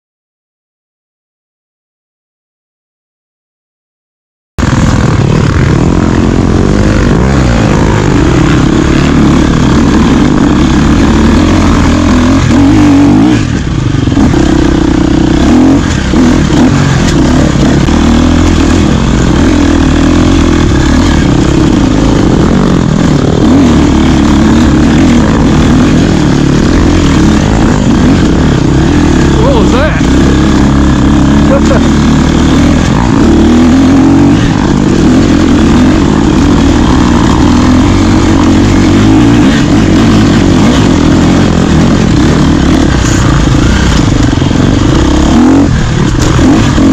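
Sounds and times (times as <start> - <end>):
dirt bike engine revving: 4.6 - 46.9.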